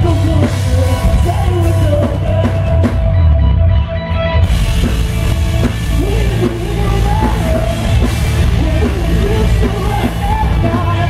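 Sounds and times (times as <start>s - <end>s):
drum kit pounding: 0.0s - 3.4s, 4.4s - 11.0s
distorted electric guitars: 0.0s - 11.0s
electric bass: 0.0s - 11.0s.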